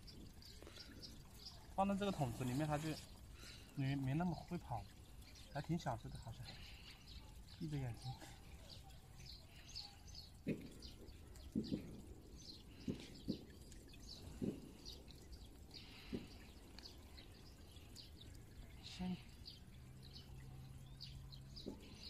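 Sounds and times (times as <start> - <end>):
faint bird chirps: 0.0 - 22.0.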